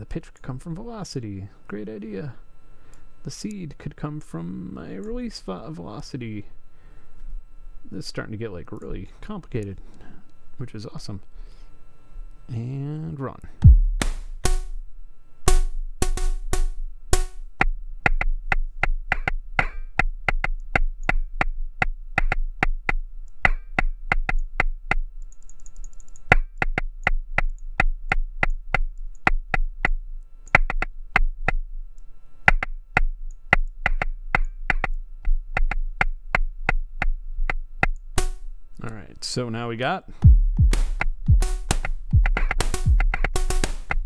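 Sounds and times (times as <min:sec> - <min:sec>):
electronic percussion hits: 0:13.6 - 0:14.8, 0:15.5 - 0:17.5, 0:38.2 - 0:38.4, 0:40.2 - 0:44.0
steady low tone: 0:13.6 - 0:17.6, 0:40.2 - 0:43.5.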